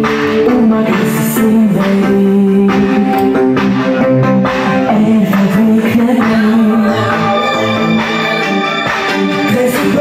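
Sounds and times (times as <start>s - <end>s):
live band with guitar: 0.0s - 10.0s.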